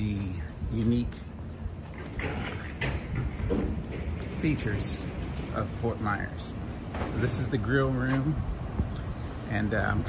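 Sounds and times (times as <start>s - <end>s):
street ambience rumble: 0.0s - 10.0s.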